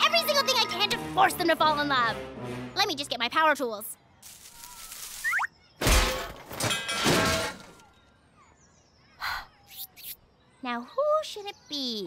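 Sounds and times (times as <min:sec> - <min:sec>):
loud crash with thud and clatter: 0:05.8 - 0:07.8.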